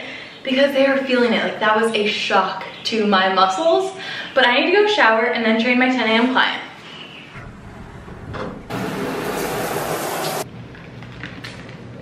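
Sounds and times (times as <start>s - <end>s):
shower spraying water: 8.7s - 10.5s.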